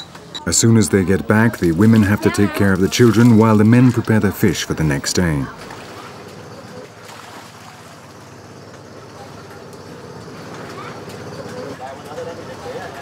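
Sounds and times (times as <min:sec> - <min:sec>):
voices calling out: 0:00.0 - 0:13.0.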